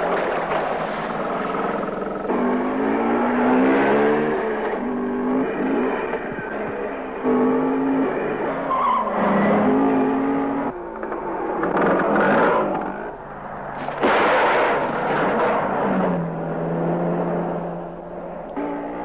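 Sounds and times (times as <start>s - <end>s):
car engine revving hard: 0.0s - 10.8s, 13.8s - 19.0s.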